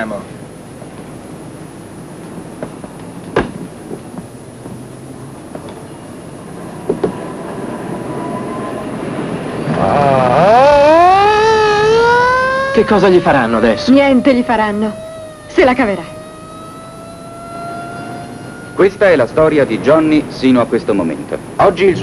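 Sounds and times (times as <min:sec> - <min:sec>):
motor vehicle hum: 0:00.0 - 0:22.0
police siren wailing: 0:08.1 - 0:19.5.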